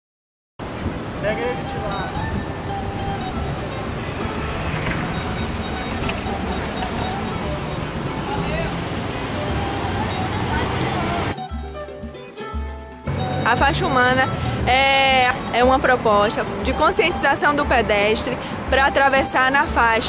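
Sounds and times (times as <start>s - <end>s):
traffic noise: 0.6s - 20.0s
people talking: 1.2s - 2.4s, 5.2s - 11.4s, 13.4s - 20.0s
background music: 1.2s - 20.0s.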